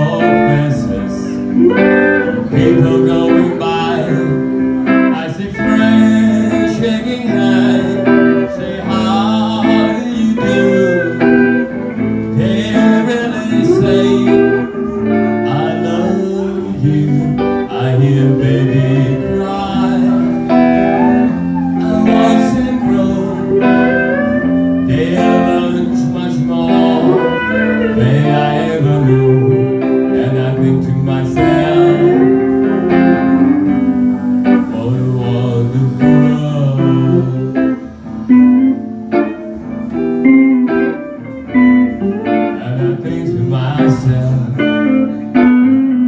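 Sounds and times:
electric guitars playing slow ballad: 0.0 - 46.0.

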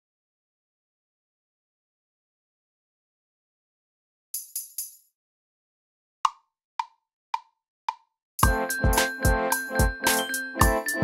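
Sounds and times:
metronome woodblock clicks: 6.3 - 11.0.

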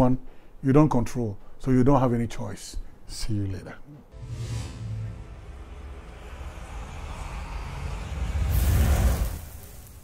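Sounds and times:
loud whoosh: 4.2 - 10.0
low rumble: 4.2 - 10.0.

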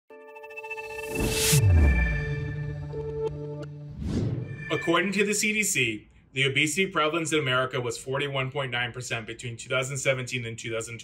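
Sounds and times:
whoosh: 3.9 - 5.2.

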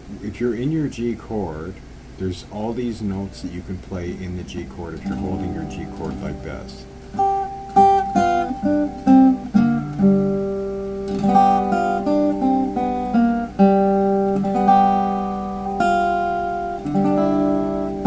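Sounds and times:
acoustic guitar fingerpicked: 3.4 - 18.0.

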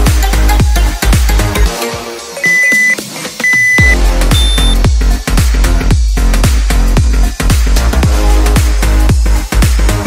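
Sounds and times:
quiet electronic music: 0.0 - 5.2
electronic timer beeps: 2.4 - 4.8.

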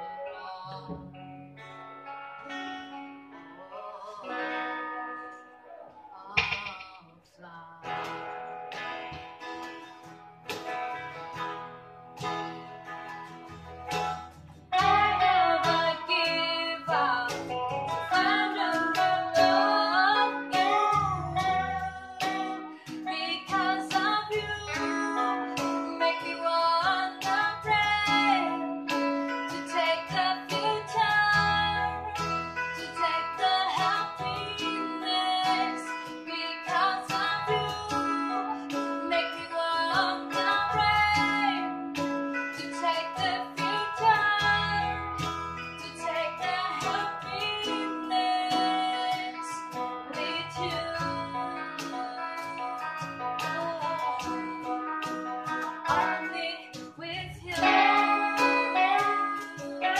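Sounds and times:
woman singing: 0.0 - 1.1, 3.3 - 8.1, 14.7 - 59.9
lead electric guitar: 0.0 - 7.1, 7.7 - 59.9
strummed electric guitar: 0.0 - 59.9.

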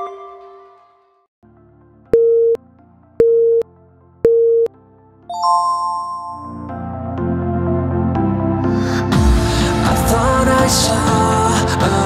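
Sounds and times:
electronic countdown beeps: 2.2 - 2.6, 3.2 - 3.6, 4.3 - 4.7.

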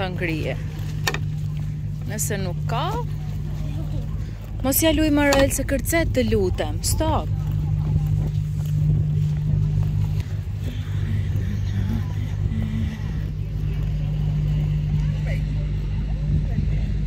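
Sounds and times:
low mechanical drone: 0.0 - 17.0.

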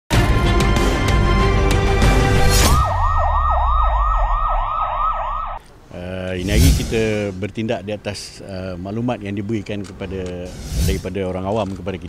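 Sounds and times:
music: 0.1 - 3.0
emergency siren yelping: 2.6 - 5.6.

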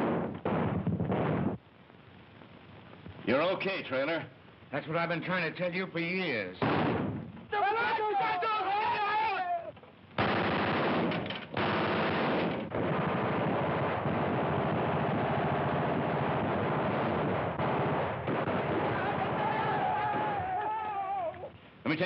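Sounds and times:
machine-gun fire: 6.6 - 7.2, 10.2 - 20.4
man yelling: 7.5 - 9.8, 18.9 - 21.5.

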